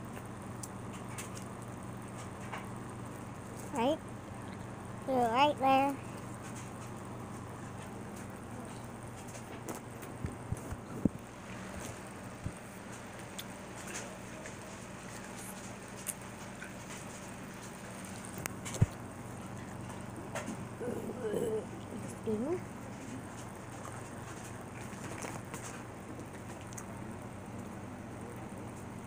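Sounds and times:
low room hum: 0.0s - 29.0s.

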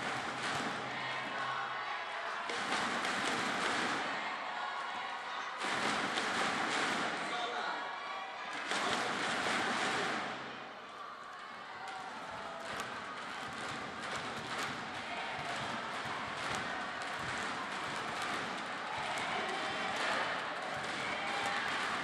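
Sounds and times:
crowd cheering and shouting: 0.0s - 22.0s.

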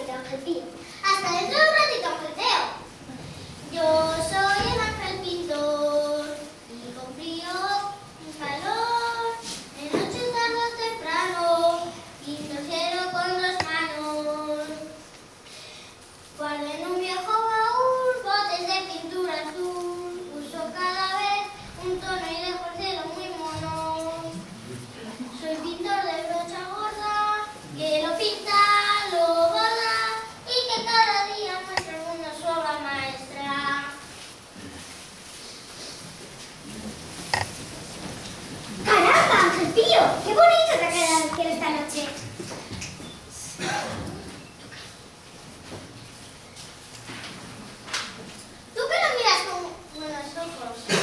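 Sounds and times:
child singing: 3.7s - 15.0s, 16.4s - 24.4s, 25.4s - 34.0s.

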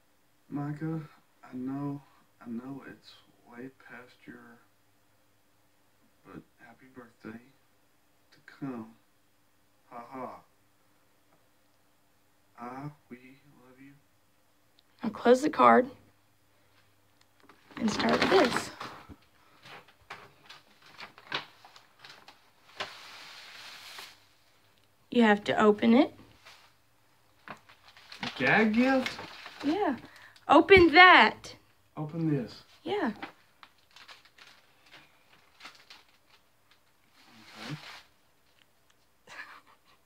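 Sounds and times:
plastic package crinkling: 17.4s - 19.0s, 19.6s - 24.2s, 27.3s - 30.4s, 33.2s - 37.0s
paper bag rustling: 17.6s - 24.4s, 26.3s - 30.3s, 33.1s - 38.2s.

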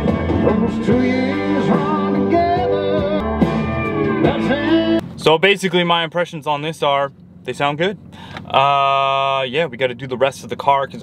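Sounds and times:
song over car stereo: 0.0s - 5.4s
strong subwoofer bass: 0.0s - 11.0s.

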